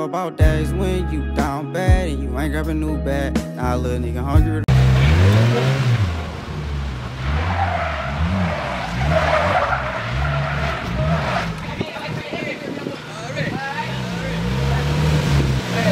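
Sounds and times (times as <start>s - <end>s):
rap music with deep bass beat: 0.0s - 5.8s
tires squealing: 4.7s - 15.9s.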